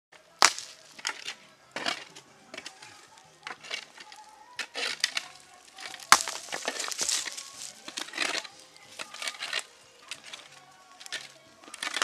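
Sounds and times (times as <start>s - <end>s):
digging stony soil by hand: 0.4s - 12.0s.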